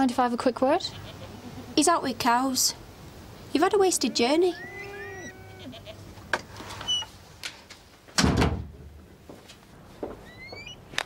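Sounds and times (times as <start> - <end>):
sheep bleating: 0.8 - 1.8, 3.8 - 6.1
door shutting with thud: 8.2 - 8.8.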